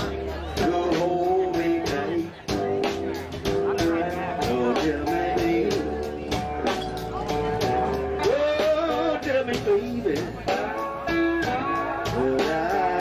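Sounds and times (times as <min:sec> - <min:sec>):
bass guitar: 0:00.0 - 0:13.0
lead guitar with bent notes: 0:00.0 - 0:13.0
steady drum beat: 0:00.0 - 0:13.0.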